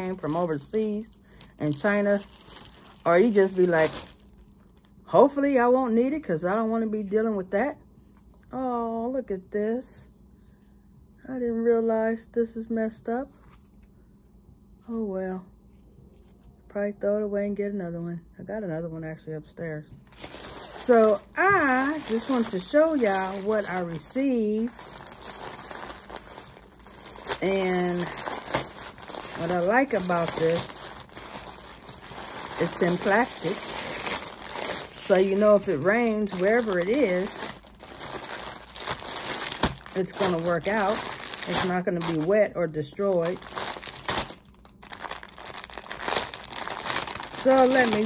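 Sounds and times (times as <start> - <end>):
plastic packaging crinkling: 0.0 - 4.9, 20.1 - 48.0.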